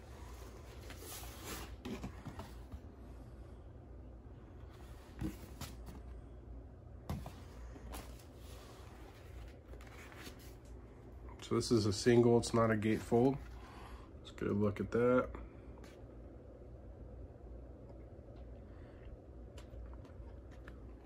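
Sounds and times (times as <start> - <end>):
cardboard rustling: 7.1 - 10.8.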